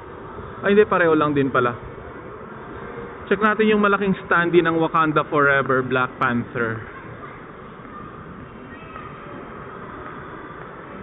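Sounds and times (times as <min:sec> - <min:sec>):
cinema lobby background noise: 0:00.0 - 0:11.0.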